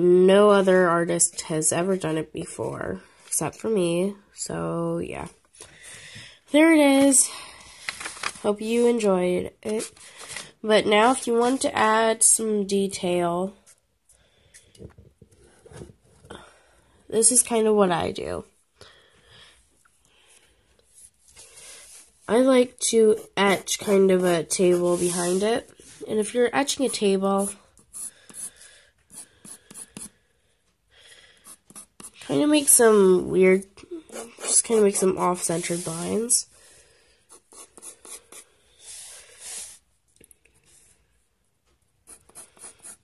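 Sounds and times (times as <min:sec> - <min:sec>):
paper rustling: 0:07.7 - 0:08.6, 0:09.7 - 0:10.6
pencil scratching on paper: 0:20.9 - 0:30.2, 0:31.4 - 0:33.0, 0:34.0 - 0:36.3, 0:37.3 - 0:39.8, 0:42.0 - 0:43.0.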